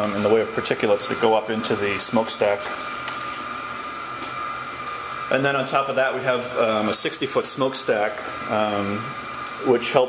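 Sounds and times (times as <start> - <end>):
high machinery whine: 0.0 - 10.0.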